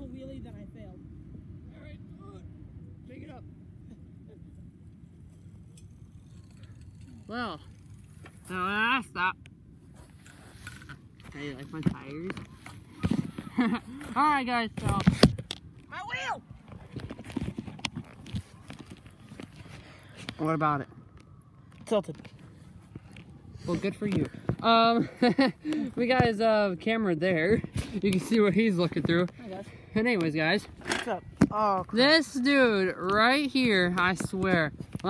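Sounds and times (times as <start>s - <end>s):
wind rumble on microphone: 33.5s - 35.0s.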